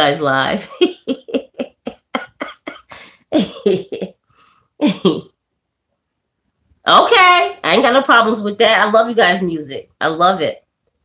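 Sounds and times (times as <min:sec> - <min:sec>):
woman laughing: 0:00.6 - 0:04.2, 0:04.8 - 0:05.3.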